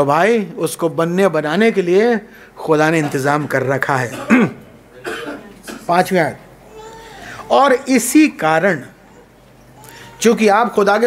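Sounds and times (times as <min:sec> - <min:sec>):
man coughing: 0:04.0 - 0:06.0.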